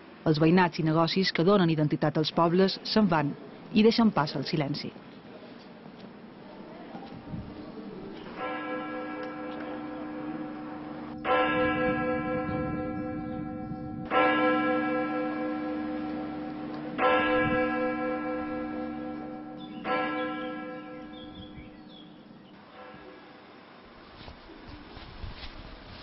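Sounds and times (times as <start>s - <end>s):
church bell tolling: 8.3s - 23.5s.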